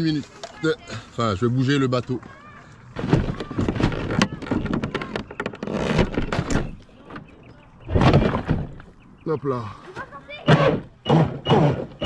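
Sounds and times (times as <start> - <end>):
knocks and scraping on plastic hull: 2.9 - 9.0.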